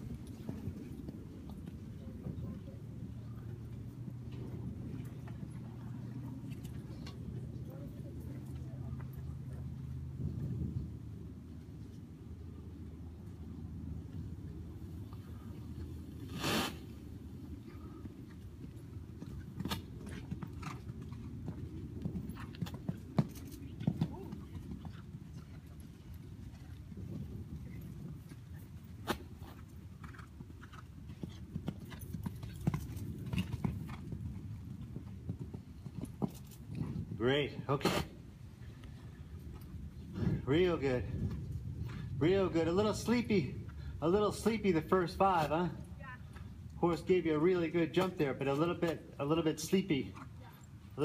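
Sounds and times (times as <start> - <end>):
muffled hoofbeats on sand: 0.0 - 10.8, 15.1 - 48.0
steady low rumble: 36.6 - 46.0.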